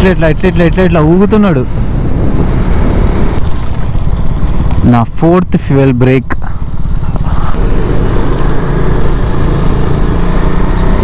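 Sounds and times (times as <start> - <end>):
motorcycle engine running at low revs: 0.0 - 5.6, 6.3 - 11.0.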